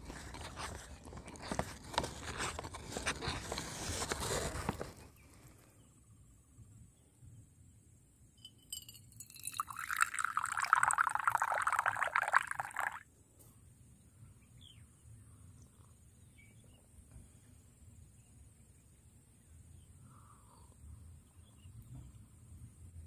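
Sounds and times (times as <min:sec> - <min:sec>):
coffee pouring into mug: 0:08.7 - 0:13.0.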